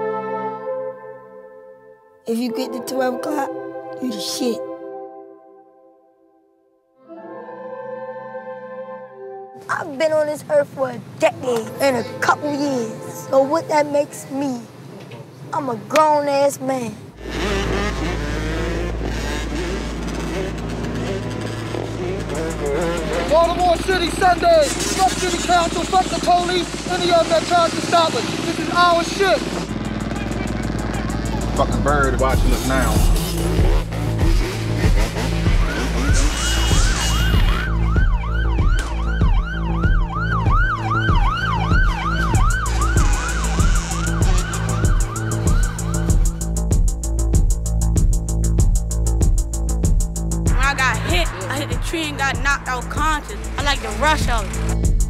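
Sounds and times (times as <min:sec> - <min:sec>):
dirt bike engines revving: 0:17.2 - 0:38.1, 0:41.1 - 0:47.8, 0:50.5 - 0:55.0
music with heavy beat: 0:29.5 - 0:55.0
police siren yelping: 0:35.5 - 0:46.6.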